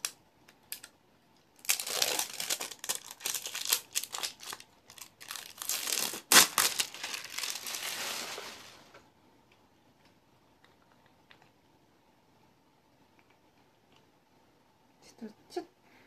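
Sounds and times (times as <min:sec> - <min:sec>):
plastic wrapping crinkling: 0:00.0 - 0:00.9, 0:01.6 - 0:09.0
sharp plastic crackle: 0:00.0 - 0:01.0, 0:01.6 - 0:09.0.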